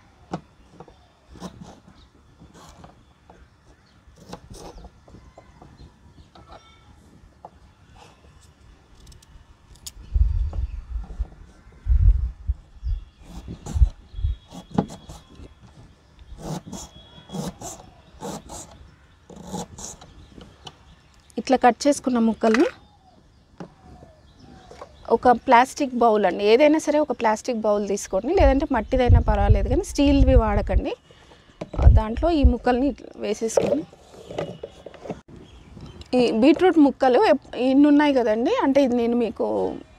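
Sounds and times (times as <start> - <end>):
woman's voice: 21.4 - 22.8, 25.1 - 31.0, 31.8 - 33.9, 36.1 - 39.9
light knocks and scrapes: 33.5 - 36.0.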